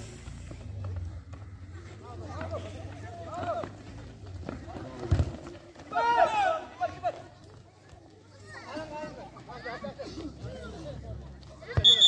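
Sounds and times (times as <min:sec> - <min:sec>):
players and spectators shouting: 0:04.6 - 0:07.4.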